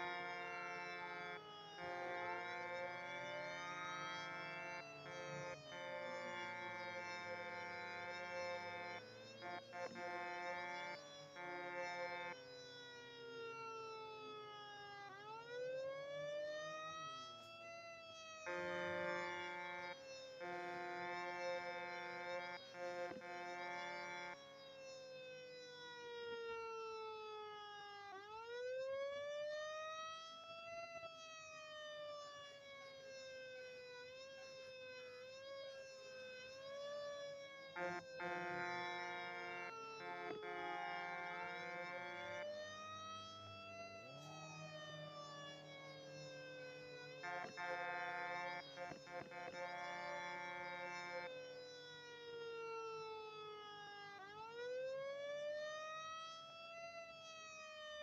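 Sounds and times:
fire truck siren wailing: 0:00.0 - 0:58.0
horn blasts: 0:18.4 - 0:24.4, 0:37.8 - 0:42.8.

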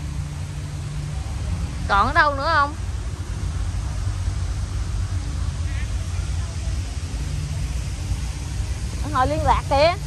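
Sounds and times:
distant voices: 0:00.0 - 0:10.0
fluttering low rumble: 0:00.0 - 0:10.0.

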